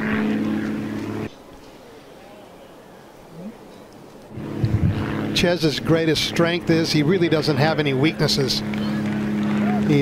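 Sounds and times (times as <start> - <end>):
low engine-like drone: 0.0 - 10.0.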